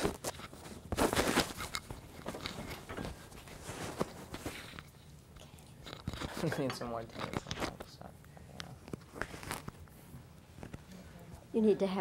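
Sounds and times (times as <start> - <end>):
clothing rustle: 0.0 - 4.9, 8.9 - 11.0.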